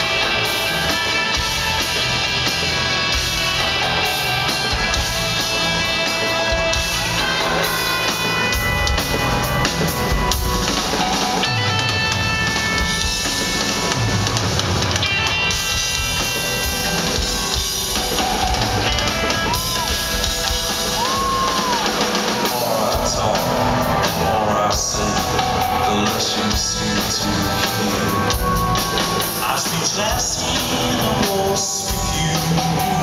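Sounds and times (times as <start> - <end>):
drum kit: 0.0 - 33.0
electric guitar: 0.0 - 33.0
keyboard chords: 0.0 - 33.0.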